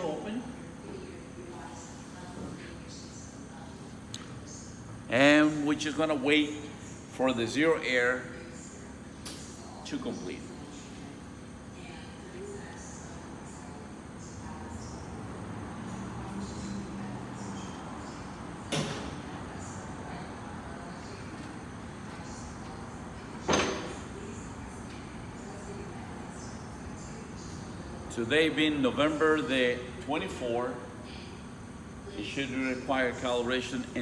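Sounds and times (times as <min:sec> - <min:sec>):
low background noise: 0:00.0 - 0:34.0.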